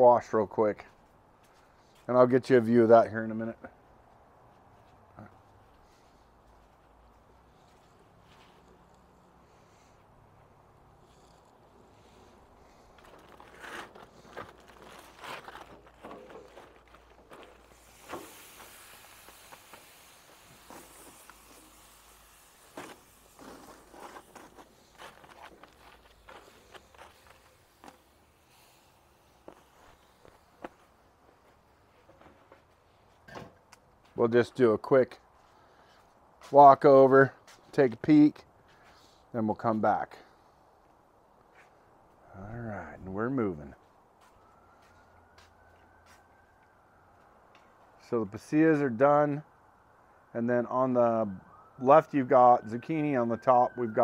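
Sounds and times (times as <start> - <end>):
footsteps: 3.8 - 10.6, 11.9 - 21.9, 22.5 - 34.6, 35.2 - 37.8, 43.7 - 46.4.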